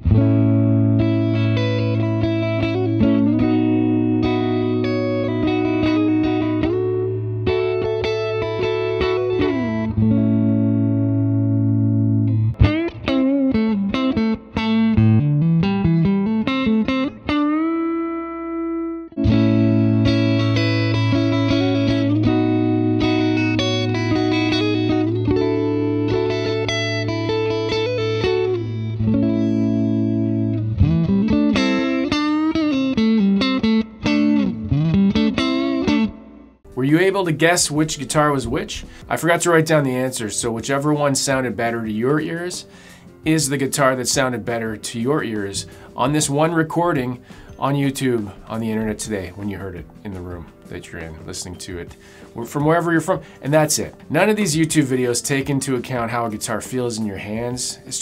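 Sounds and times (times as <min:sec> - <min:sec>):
electric guitar melody with bends: 0:00.0 - 0:58.0.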